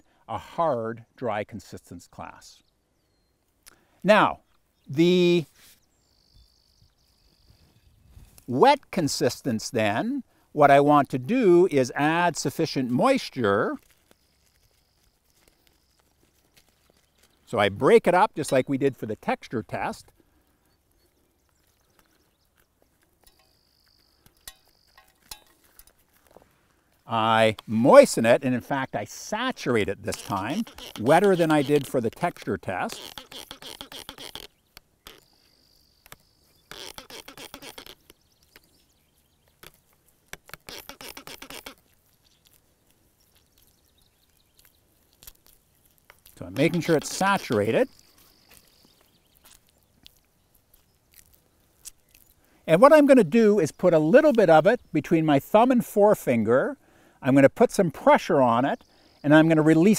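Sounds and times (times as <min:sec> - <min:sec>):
dry soil ticking in fingers: 0:08.2 - 0:56.4
spray bottle squirting water: 0:40.5 - 0:41.8.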